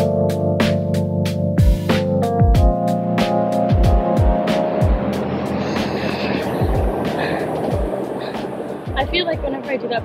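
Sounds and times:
hip-hop track: 0.0s - 10.0s
steady rushing noise: 3.0s - 10.0s
deep kick drum hits: 3.7s - 5.1s, 6.6s - 7.0s, 7.7s - 8.0s.

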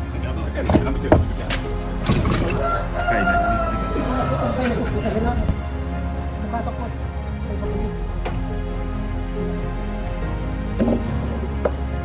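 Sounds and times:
rooster crowing: 2.4s - 4.9s.

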